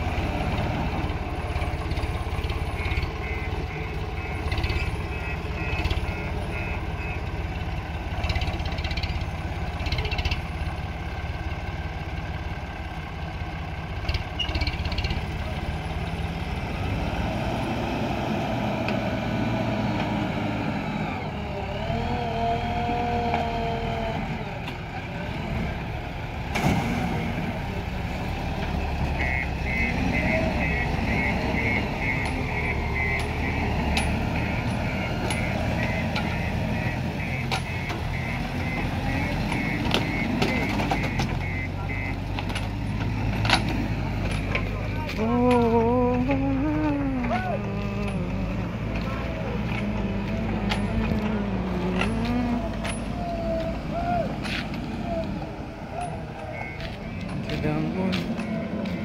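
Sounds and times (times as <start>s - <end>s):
reversing alarm beeping: 0.0s - 9.2s, 28.6s - 42.3s, 55.8s - 59.0s
diesel engines running: 0.0s - 59.0s.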